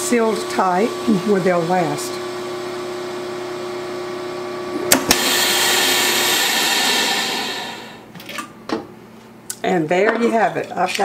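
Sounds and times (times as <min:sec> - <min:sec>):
vacuum pump humming: 0:00.0 - 0:08.1.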